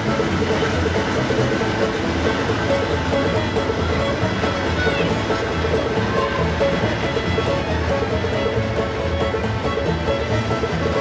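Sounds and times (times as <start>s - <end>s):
diesel locomotive engine running: 0.0s - 11.0s
mechanical noise: 0.0s - 11.0s.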